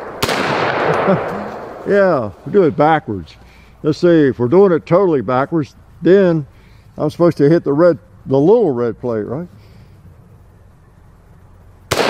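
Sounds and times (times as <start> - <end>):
rifle shot: 0.0 - 2.0.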